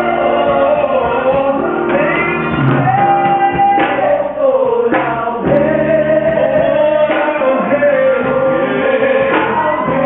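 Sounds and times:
choir singing long chords: 0:05.4 - 0:10.0.

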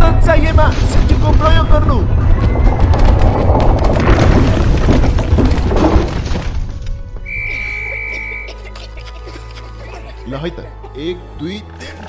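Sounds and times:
heavy earthquake rumbling: 0:00.0 - 0:07.2
film music: 0:00.0 - 0:12.0
debris crashing and shattering: 0:00.2 - 0:07.0.

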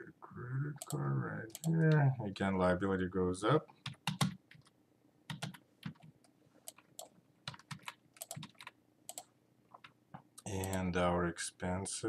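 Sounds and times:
computer keyboard typing: 0:00.8 - 0:01.7, 0:03.8 - 0:04.7, 0:05.3 - 0:10.9.

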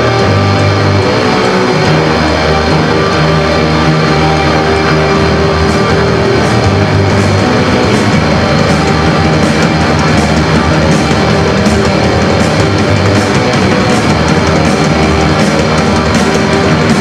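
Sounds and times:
punk band playing distorted music: 0:00.0 - 0:17.0.

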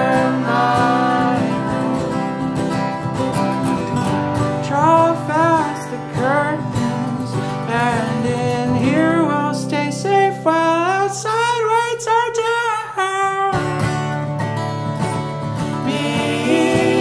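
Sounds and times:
acoustic guitars strumming: 0:00.0 - 0:17.0.

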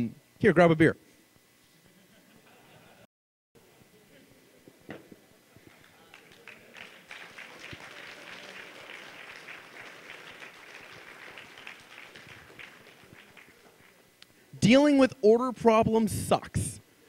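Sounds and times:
audience applauding: 0:05.6 - 0:14.1.

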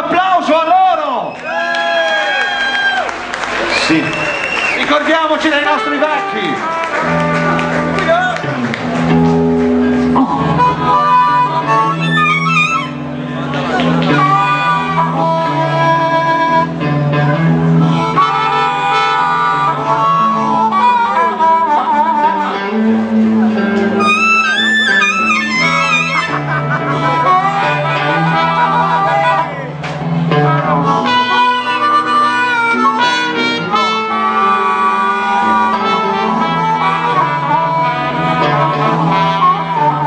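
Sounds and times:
wind instrument melody: 0:04.8 - 0:40.0
bass line: 0:04.9 - 0:40.0.

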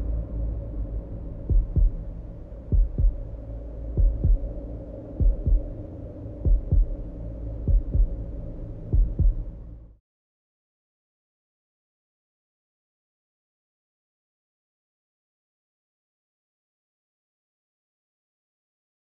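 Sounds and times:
low sustained drone: 0:00.0 - 0:09.9
heartbeat thumps: 0:01.4 - 0:02.1, 0:02.7 - 0:04.6, 0:05.2 - 0:05.8, 0:06.4 - 0:08.2, 0:08.9 - 0:09.5.

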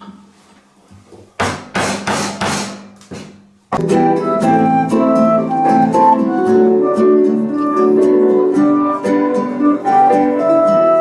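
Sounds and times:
mallet striking a gouge handle: 0:01.4 - 0:03.3.

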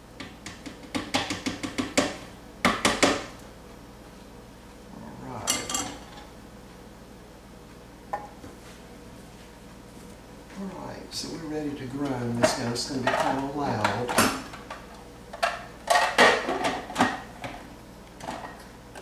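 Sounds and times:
spoon knocking on food processor bowl: 0:00.2 - 0:03.2.

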